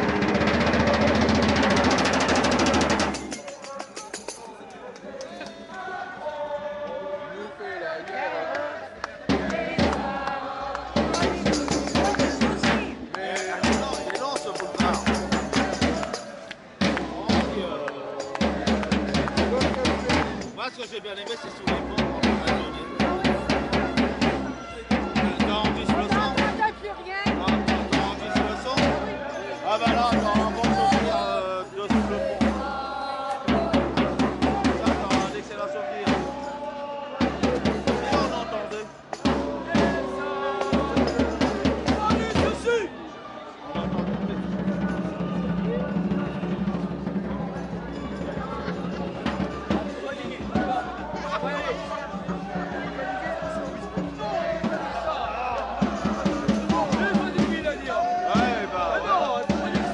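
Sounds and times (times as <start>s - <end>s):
drum beaten with sticks: 0.0s - 4.5s, 9.3s - 36.6s, 37.2s - 42.9s, 43.8s - 59.9s
crowd voices: 0.0s - 59.9s.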